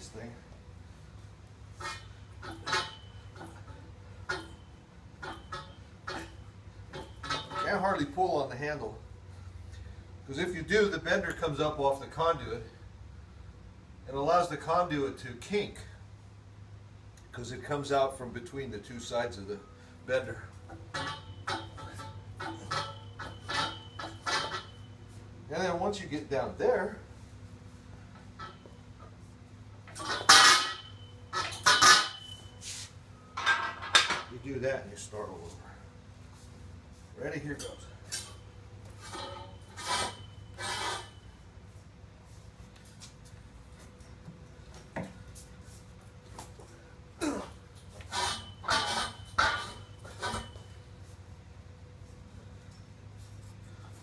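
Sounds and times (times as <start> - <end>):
conduit bender squeaking creaks: 20.6 - 25.2, 47.8 - 50.8.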